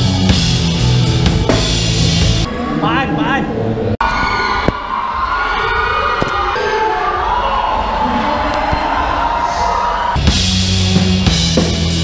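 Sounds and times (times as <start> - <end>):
drum kit: 0.0 - 2.5, 10.2 - 12.0
band playing loud: 0.0 - 3.9, 10.1 - 12.0
electric bass notes: 0.0 - 4.0, 10.2 - 12.0
audience cheering and whooping: 3.9 - 10.3.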